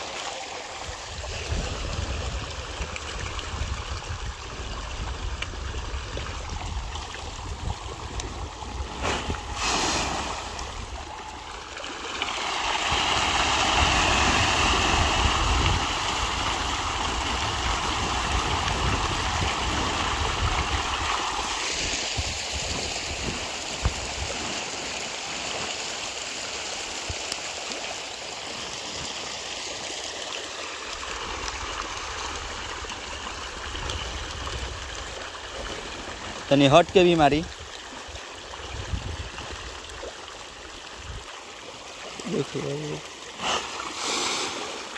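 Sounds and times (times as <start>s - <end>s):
rushing splashing water: 0.0s - 44.9s.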